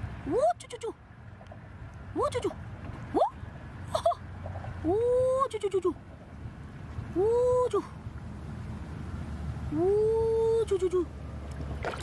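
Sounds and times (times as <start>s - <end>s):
hand moving in shallow water: 11.4s - 12.0s.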